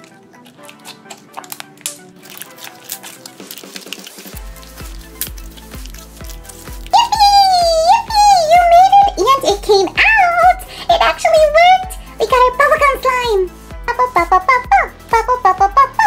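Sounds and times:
slime squished and stretched: 0:00.0 - 0:10.7
quiet background music: 0:00.0 - 0:16.0
high-pitched voice: 0:06.9 - 0:16.0.

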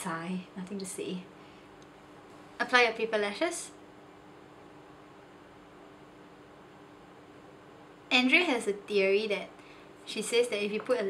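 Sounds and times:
faint steady hiss: 0:00.0 - 0:11.0
low constant hum: 0:00.0 - 0:11.0.

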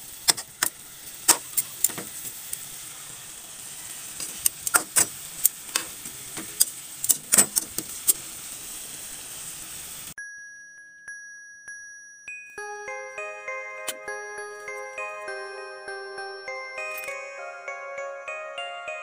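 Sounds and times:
meat sizzling in a pan: 0:00.0 - 0:10.2
held chime-like tone: 0:10.2 - 0:19.0.

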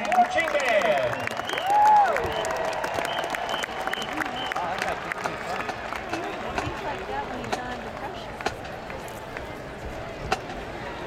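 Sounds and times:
crowd applauding and cheering: 0:00.0 - 0:09.5.

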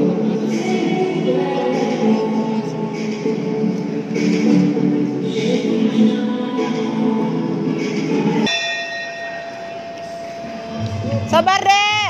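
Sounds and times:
music: 0:00.0 - 0:12.0
boxing ring bell strike: 0:08.5 - 0:10.8.

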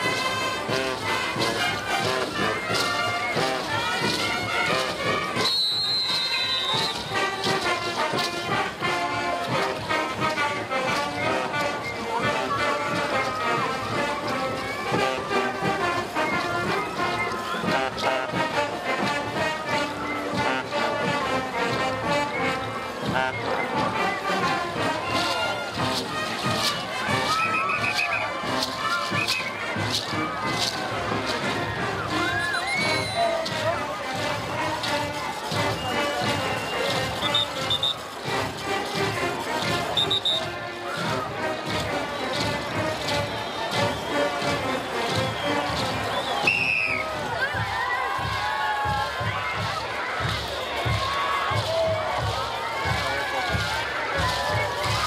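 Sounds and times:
regular drumbeat: 0:00.0 - 0:05.5, 0:06.1 - 0:46.4
live folk band music: 0:00.0 - 0:55.0.

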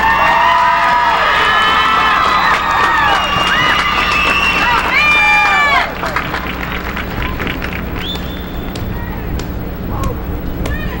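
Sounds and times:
applause: 0:00.0 - 0:08.7
crowd cheering: 0:00.0 - 0:09.4
long whistle: 0:01.3 - 0:05.7, 0:08.0 - 0:08.9.

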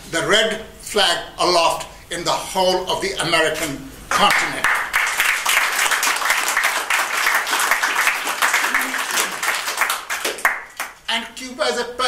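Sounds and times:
audience applauding: 0:04.1 - 0:11.0.

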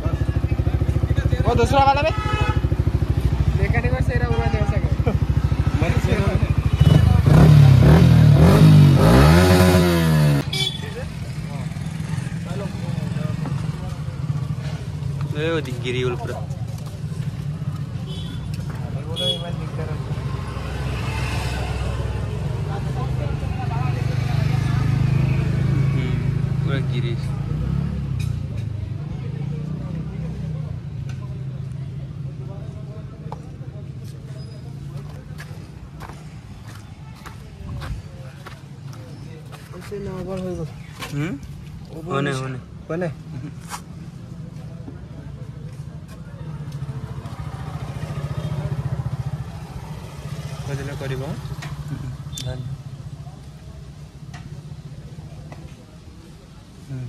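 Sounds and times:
motorcycle engine idling: 0:00.0 - 0:08.2
background chatter: 0:00.0 - 0:57.0.

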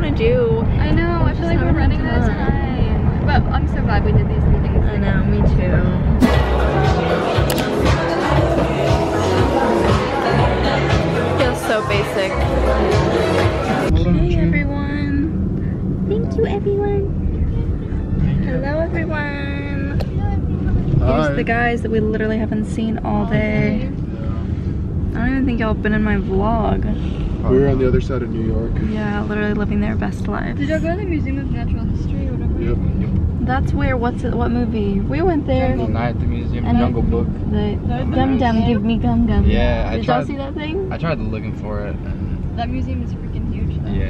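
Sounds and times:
people speaking: 0:00.0 - 0:15.3, 0:16.1 - 0:24.4, 0:25.1 - 0:44.0
people talking: 0:00.0 - 0:15.3, 0:16.1 - 0:24.5, 0:25.1 - 0:44.0
car cabin road rumble: 0:00.0 - 0:44.0.

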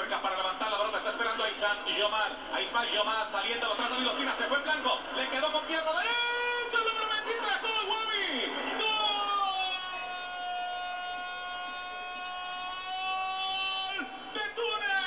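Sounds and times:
commentator shouting excitedly: 0:05.8 - 0:15.0
long drawn-out shout: 0:08.2 - 0:15.0.

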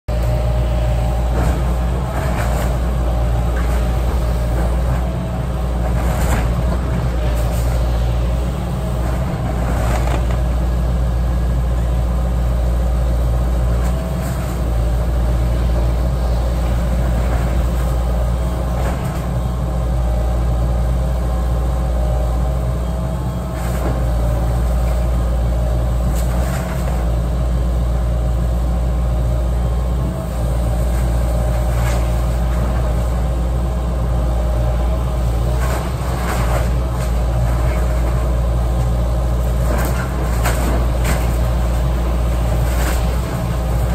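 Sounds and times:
excavator diesel engine running: 0:00.1 - 0:43.9.

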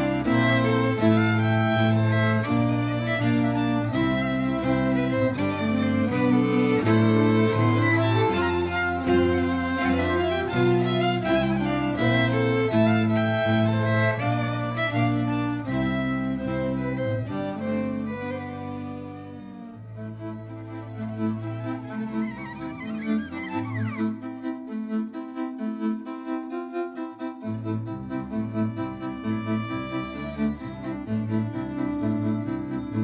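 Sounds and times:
bowed double bass: 0:00.0 - 0:33.0
fiddle melody: 0:00.0 - 0:33.0.

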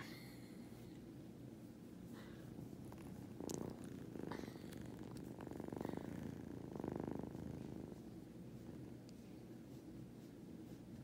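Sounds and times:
kitten purring: 0:02.0 - 0:11.0.

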